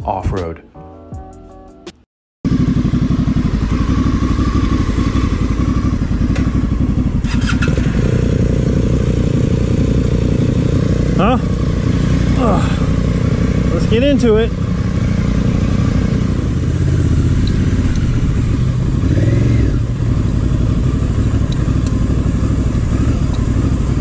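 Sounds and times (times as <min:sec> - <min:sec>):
motorcycle engine running: 0:02.5 - 0:24.0.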